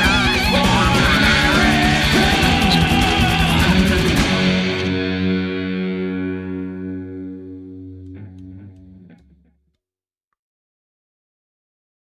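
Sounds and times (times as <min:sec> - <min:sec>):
distorted electric guitar chord: 0:00.0 - 0:09.5.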